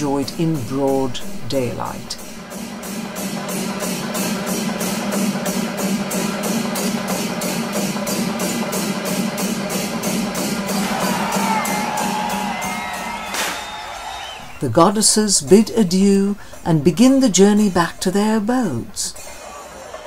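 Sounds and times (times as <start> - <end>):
cymbal strikes: 2.1 - 13.7
crowd cheering: 10.6 - 16.3, 19.2 - 20.0.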